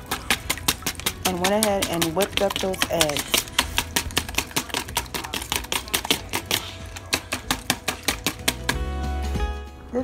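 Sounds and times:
whisk clicking against bowl: 0:00.0 - 0:08.8.

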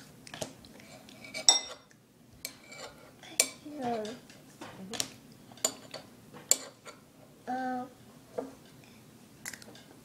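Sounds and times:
cutlery clinking on ceramic bowl: 0:01.2 - 0:04.2, 0:05.5 - 0:07.0.

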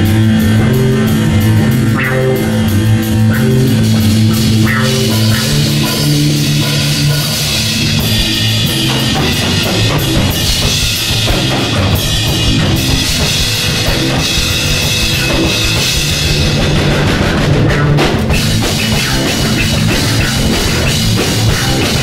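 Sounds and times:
drum kit and cymbals: 0:00.0 - 0:22.0
electric guitars: 0:00.0 - 0:22.0.

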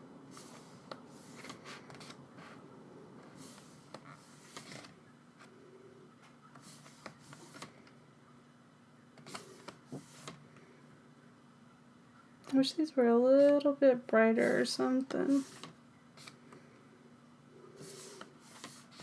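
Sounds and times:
pages turning: 0:00.4 - 0:02.2, 0:03.4 - 0:05.0, 0:06.6 - 0:07.8, 0:17.8 - 0:19.0.

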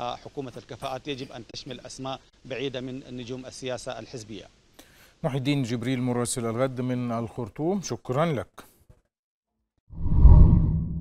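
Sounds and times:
deep whoosh: 0:09.9 - 0:11.0.

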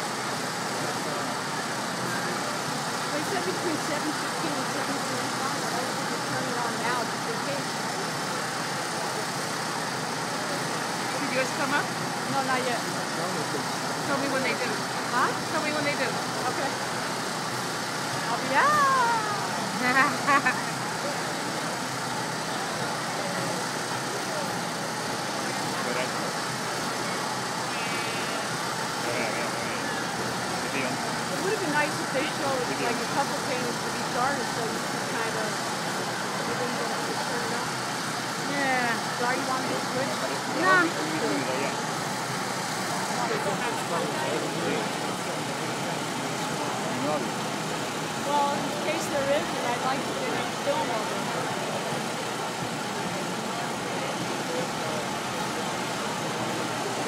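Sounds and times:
crowd chatter: 0:00.0 - 0:57.0
traffic: 0:00.0 - 0:57.0.

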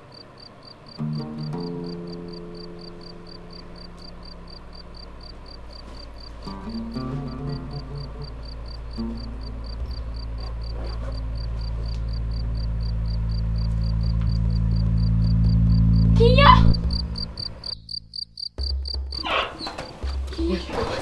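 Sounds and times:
insect chirping: 0:00.0 - 0:20.6
low background music: 0:00.6 - 0:21.0.

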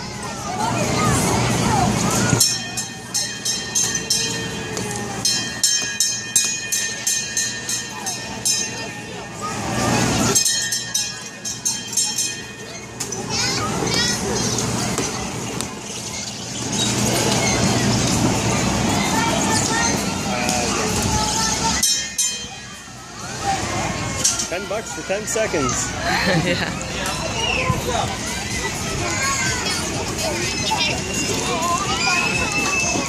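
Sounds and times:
children's voices: 0:00.0 - 0:06.0, 0:07.2 - 0:33.0
small bell ringing rapidly: 0:02.4 - 0:09.3, 0:10.3 - 0:13.6.

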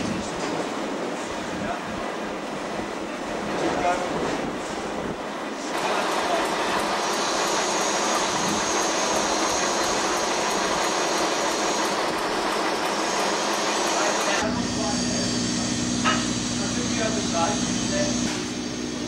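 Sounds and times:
heavy machinery engine running: 0:05.7 - 0:19.0
thin high whine: 0:12.9 - 0:19.0.

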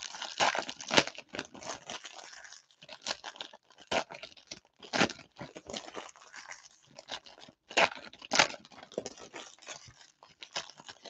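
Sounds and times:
foil wrappers crinkling: 0:00.0 - 0:11.0.

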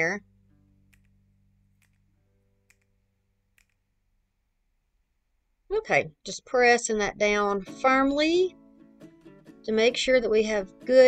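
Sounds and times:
faint background music: 0:00.0 - 0:02.9, 0:05.7 - 0:11.0.

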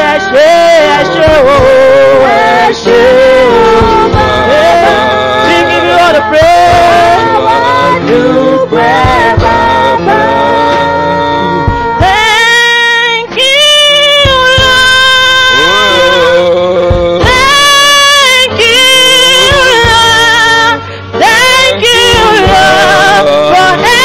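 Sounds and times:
man singing into a microphone: 0:00.0 - 0:24.0
musical accompaniment with low beats: 0:00.0 - 0:24.0.

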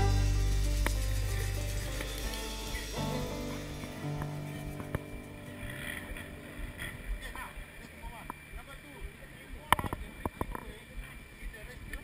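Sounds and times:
background music: 0:00.0 - 0:08.5
soft even outdoor hiss: 0:00.0 - 0:12.0.

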